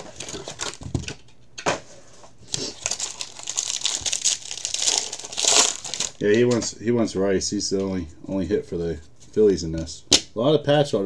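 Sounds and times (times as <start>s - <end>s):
card pack wrapper crinkling: 0.0s - 0.9s, 2.5s - 6.3s.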